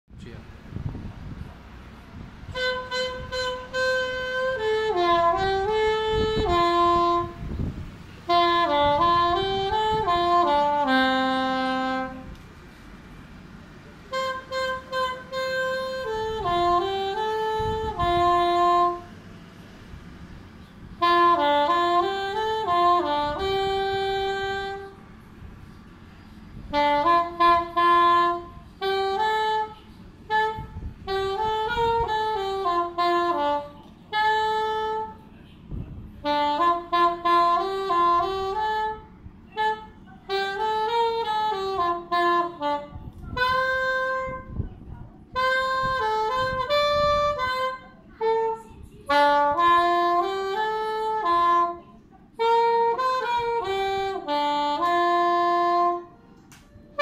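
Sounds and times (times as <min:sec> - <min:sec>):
plastic saxophone melody: 0:02.4 - 0:12.8, 0:14.0 - 0:35.3, 0:36.2 - 0:44.6, 0:45.3 - 0:57.0.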